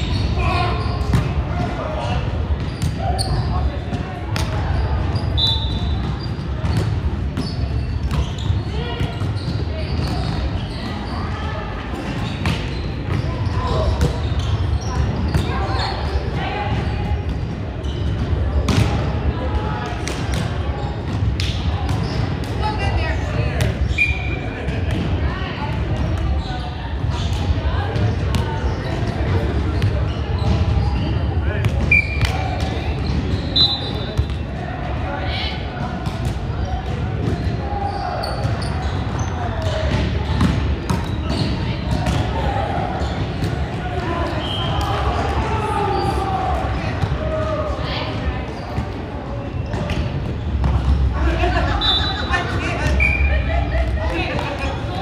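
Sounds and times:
volleyball hits and bounces: 5.6s - 11.0s, 16.7s - 19.2s, 38.3s - 45.5s
players calling out: 36.6s - 55.0s.

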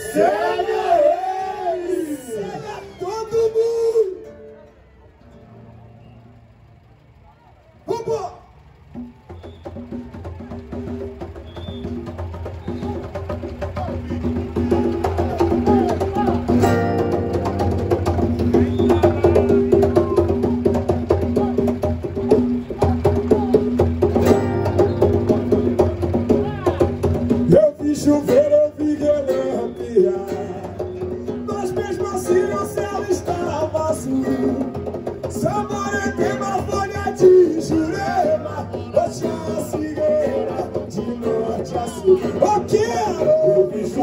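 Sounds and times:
samba percussion band: 7.9s - 44.0s.

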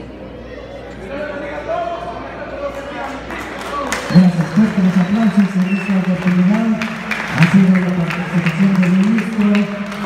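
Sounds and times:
crowd talking in echoing hall: 0.0s - 10.0s.

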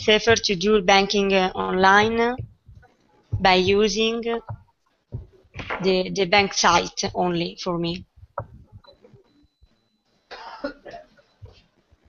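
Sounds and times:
person coughing: 10.3s - 11.2s.

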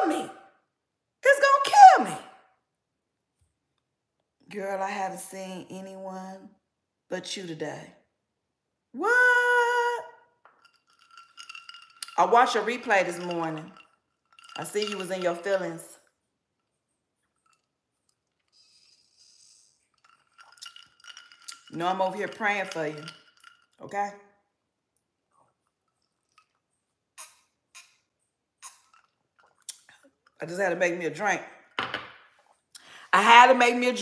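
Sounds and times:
woman speaking: 0.0s - 0.3s, 1.2s - 2.2s, 4.5s - 6.5s, 7.1s - 8.0s, 9.0s - 10.1s, 12.1s - 13.8s, 14.6s - 16.0s, 21.6s - 23.1s, 23.8s - 24.2s, 30.4s - 31.4s, 33.1s - 34.0s
person sipping from glass: 17.5s - 21.6s.

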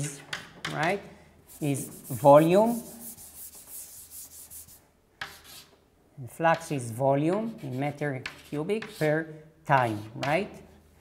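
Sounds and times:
chalk scratching on chalkboard: 1.5s - 5.8s, 7.3s - 10.4s.

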